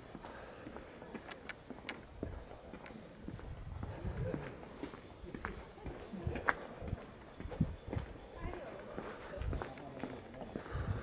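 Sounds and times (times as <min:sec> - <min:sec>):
faint voices: 0:00.0 - 0:11.0
footsteps on paved path: 0:00.0 - 0:11.0.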